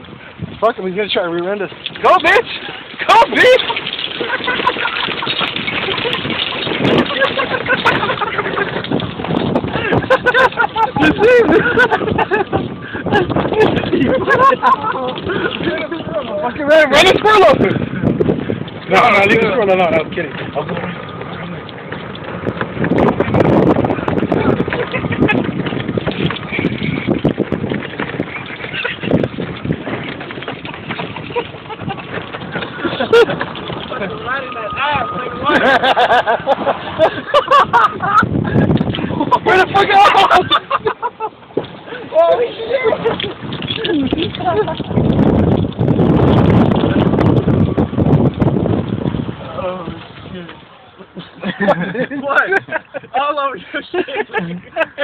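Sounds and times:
ground and wind rushing: 0.0 - 55.0
cart clicking and knocking: 0.7 - 53.1
people's voices: 1.4 - 8.8, 12.8 - 22.0, 32.6 - 36.2, 38.7 - 40.9.

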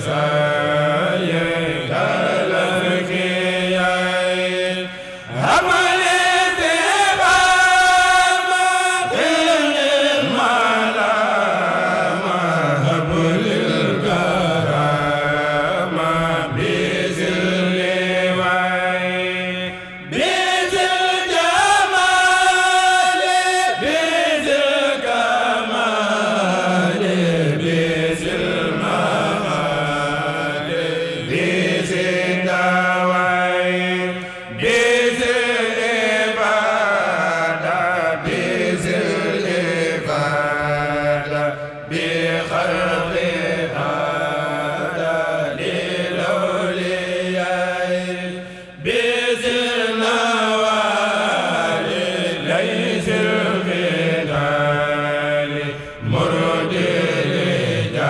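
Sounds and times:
men chanting a religious poem: 0.0 - 58.0.

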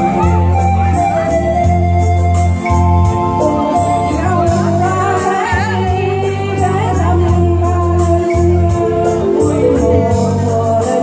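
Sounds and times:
woman singing with vibrato: 3.5 - 11.0
electronic keyboard chords and bass: 8.7 - 10.8.

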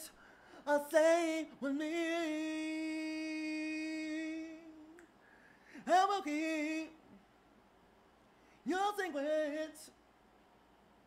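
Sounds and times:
man singing a cappella: 0.0 - 7.2, 8.6 - 10.0.

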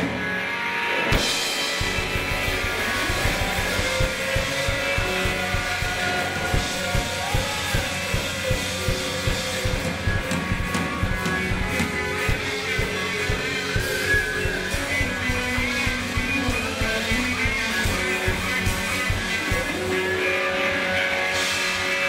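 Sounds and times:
bass guitar: 0.0 - 22.0
electric guitars: 0.0 - 22.0
drum kit steady beat: 1.1 - 20.2.

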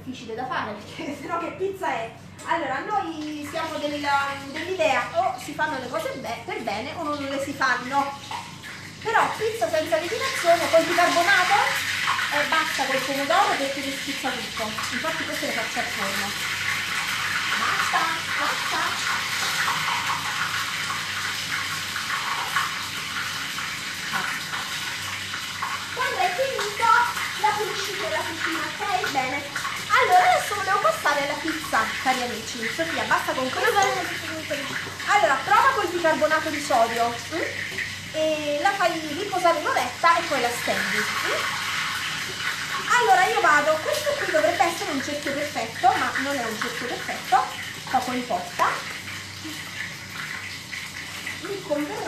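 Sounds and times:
fritters sizzling in hot oil: 1.0 - 52.0.

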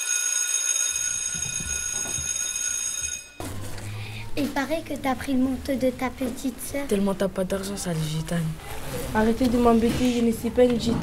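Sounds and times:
school bell ringing: 0.0 - 3.4.

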